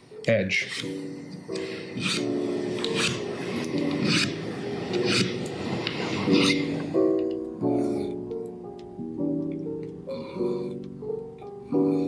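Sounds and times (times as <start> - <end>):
background music with held notes: 0.0 - 12.0
file rasping on metal frets: 2.0 - 3.3, 4.0 - 4.4, 6.2 - 6.7.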